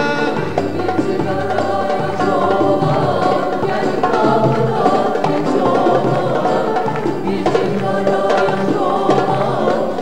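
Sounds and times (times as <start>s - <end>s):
female backing singers: 0.0s - 10.0s.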